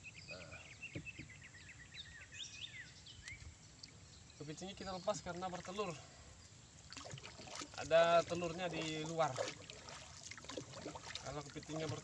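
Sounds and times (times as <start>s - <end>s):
water dripping and splashing: 5.2s - 6.0s, 6.8s - 12.0s
paddle stroking through water: 6.9s - 12.0s.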